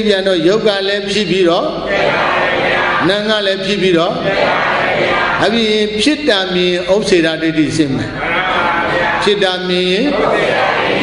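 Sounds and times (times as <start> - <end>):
man preaching in sing-song cadence: 0.0 - 1.9, 3.0 - 4.3, 5.4 - 10.2.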